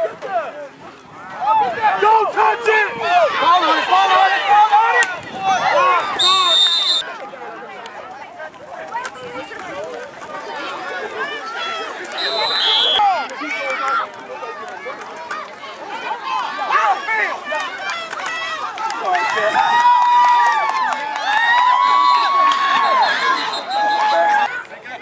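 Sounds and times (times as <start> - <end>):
spectators shouting and cheering: 0.0 - 25.0
high steady whistle tone: 6.2 - 7.0, 12.1 - 13.0, 21.9 - 24.4.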